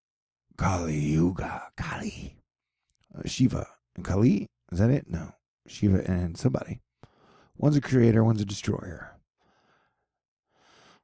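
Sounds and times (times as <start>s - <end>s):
man breathing: 7.0s - 7.6s, 9.4s - 11.0s.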